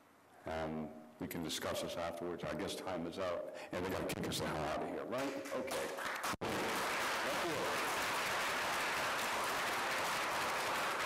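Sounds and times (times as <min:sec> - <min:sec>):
audience applauding: 0:05.3 - 0:11.0.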